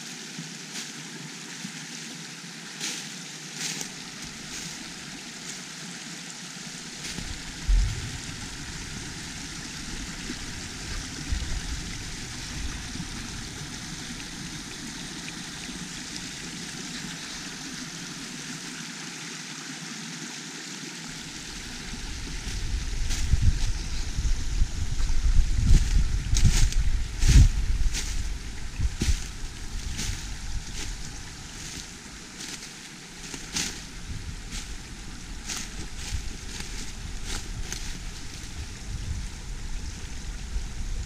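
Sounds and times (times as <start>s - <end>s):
brook water rushing over stones: 0.0s - 41.0s
low rumble on microphone: 7.0s - 14.8s, 21.1s - 32.4s, 33.2s - 41.0s.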